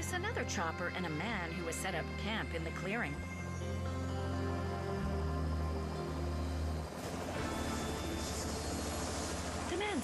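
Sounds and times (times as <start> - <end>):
music with held low notes: 0.0 - 9.8
helicopter rotor and engine: 0.3 - 10.0.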